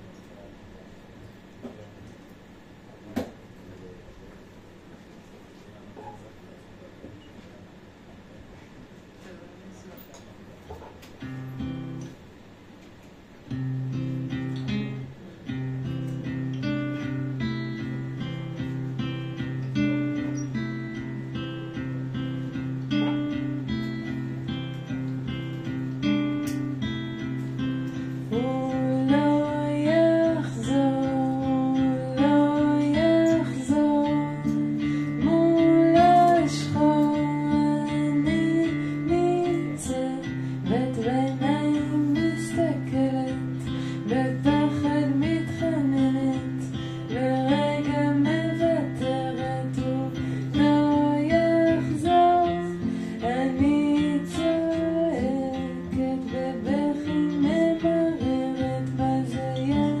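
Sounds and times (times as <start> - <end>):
acoustic guitar strumming: 13.5 - 60.0
person singing: 28.3 - 60.0.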